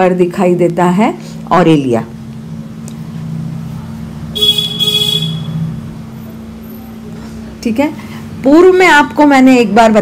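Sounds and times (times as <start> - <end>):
steady low hum: 0.0 - 10.0
high-pitched horn toot: 4.4 - 5.7.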